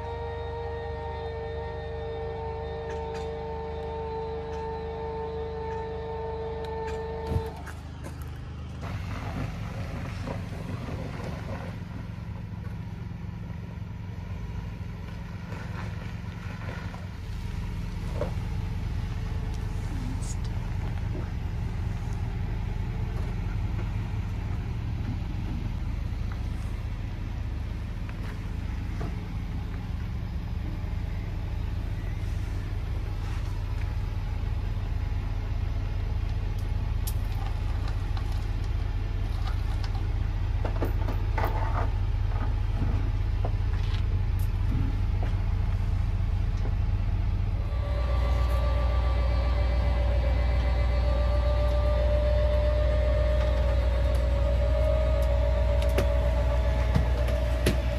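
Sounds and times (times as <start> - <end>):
diesel truck engine idling: 0.0 - 57.9.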